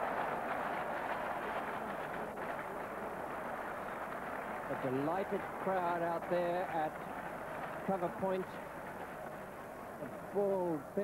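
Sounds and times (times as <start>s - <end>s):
crowd applauding and cheering: 0.0s - 10.8s.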